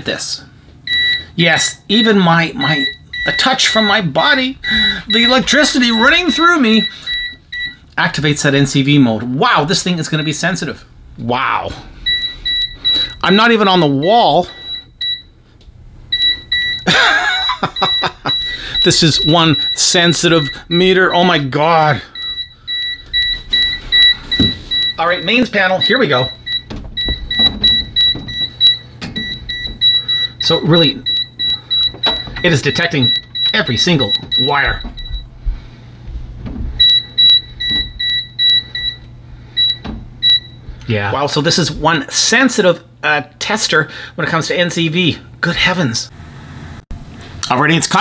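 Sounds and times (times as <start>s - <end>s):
short repeated beeps: 4.6s - 7.8s, 36.8s - 40.6s
man laughing: 16.8s - 18.7s.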